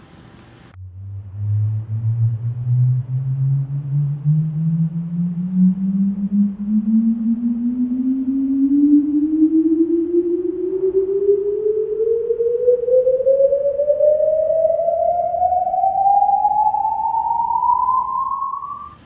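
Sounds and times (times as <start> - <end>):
rising sine sweep: 0.7 - 19.0.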